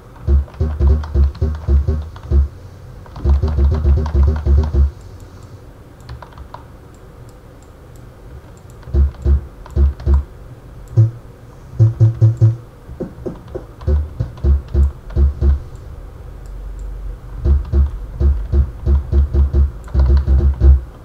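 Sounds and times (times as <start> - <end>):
typing on computer keyboard: 0.2 - 4.9, 6.0 - 6.6, 8.6 - 10.2, 13.3 - 15.6, 17.5 - 20.8.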